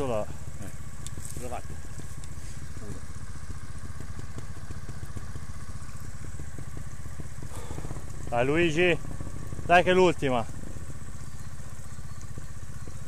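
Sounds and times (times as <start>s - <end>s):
motorcycle engine idling: 0.0s - 13.0s.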